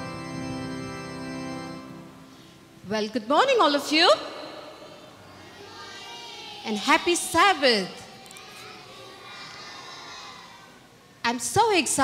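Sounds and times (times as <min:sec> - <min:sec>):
murmur of children's voices: 0:04.4 - 0:12.0.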